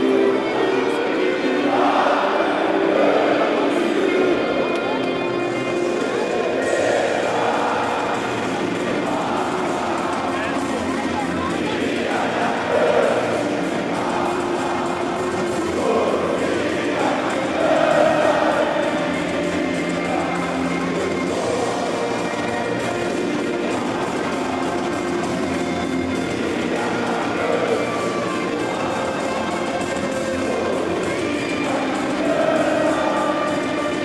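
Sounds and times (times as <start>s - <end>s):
music playing: 0.0s - 34.0s.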